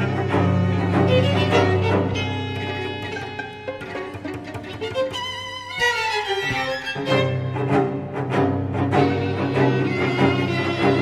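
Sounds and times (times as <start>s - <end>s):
high violin lines gliding down: 0.0s - 11.0s
string ensemble playing: 0.0s - 11.0s.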